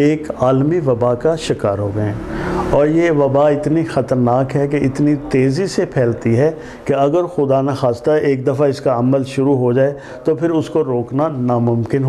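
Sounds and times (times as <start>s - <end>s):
faint low hum: 0.0s - 12.0s
man speaking: 0.0s - 12.0s.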